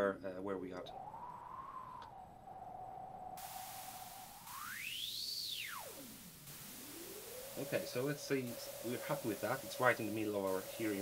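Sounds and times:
faint noise hiss: 0.0 - 11.0
resonant filter whistling tone: 0.8 - 11.0.

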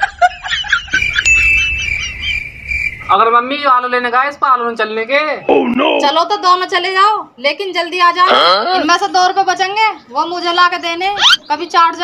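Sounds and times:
low rumble: 0.0 - 3.5
steady high-pitched tone: 0.4 - 3.4.

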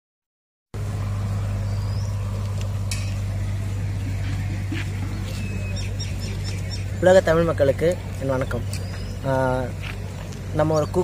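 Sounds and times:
steady low hum: 0.8 - 11.0
faint bird chirp: 1.5 - 2.3, 3.9 - 7.5, 8.1 - 11.0.

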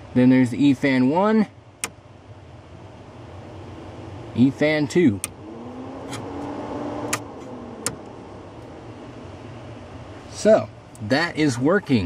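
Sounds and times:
electric cooling fan humming: 0.0 - 12.0
toggle switch clicks: 7.1 - 8.1.

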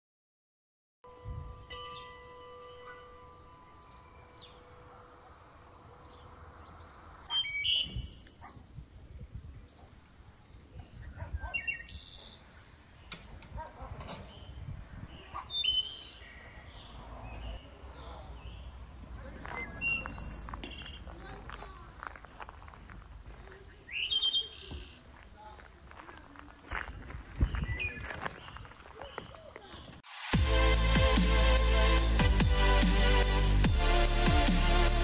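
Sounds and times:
small birds chirping: 2.0 - 30.0
wind rumble on microphone: 7.8 - 10.0, 13.1 - 15.5, 26.8 - 28.5.

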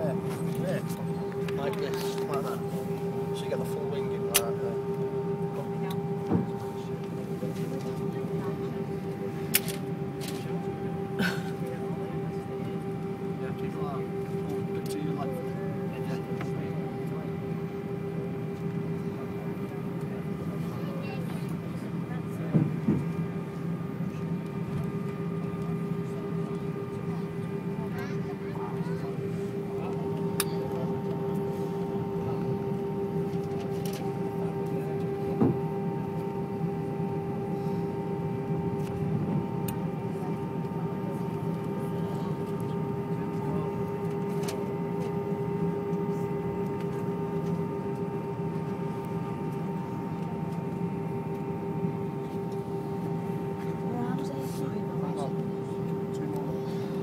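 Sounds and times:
jet engines humming and whining: 0.0 - 57.0.

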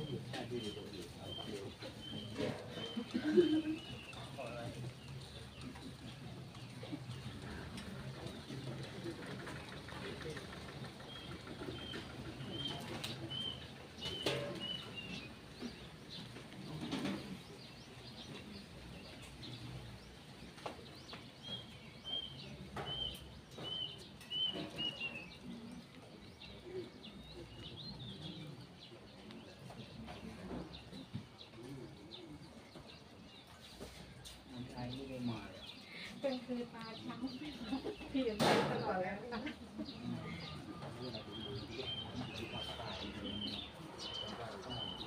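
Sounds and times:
murmur of voices: 0.0 - 45.0.

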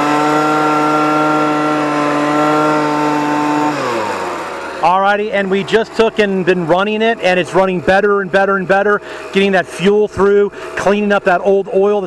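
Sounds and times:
leaf blower engine running: 0.0 - 12.0.

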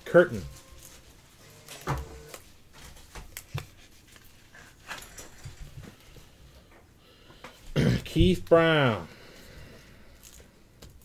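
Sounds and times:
man speaking loudly: 0.0 - 0.5, 7.9 - 9.1
cards rustling and clicking: 0.7 - 6.3.

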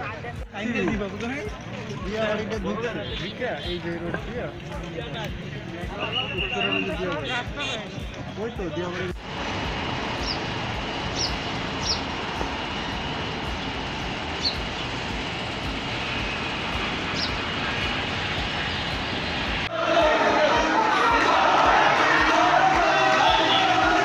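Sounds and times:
crowd of many voices: 0.0 - 9.3, 19.6 - 24.0
outdoor background noise: 0.0 - 24.0.

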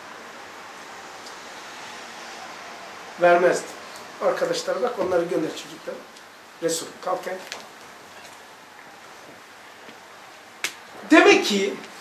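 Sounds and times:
room hiss: 0.0 - 12.0.

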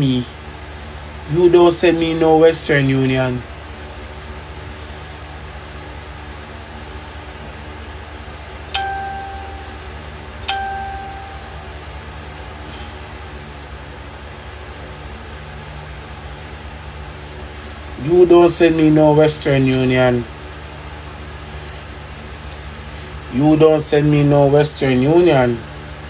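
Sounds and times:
steady low hum: 0.0 - 26.0
chime-like dings: 8.8 - 9.9, 10.5 - 11.7.

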